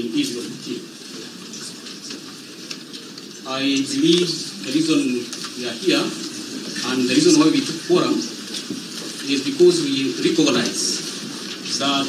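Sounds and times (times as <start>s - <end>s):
crackly hiss: 0.0s - 12.0s
faint rustling: 0.0s - 12.0s.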